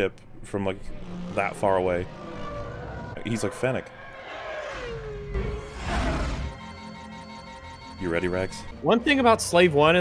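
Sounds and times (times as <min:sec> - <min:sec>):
spaceship engine whine: 0:00.8 - 0:08.0.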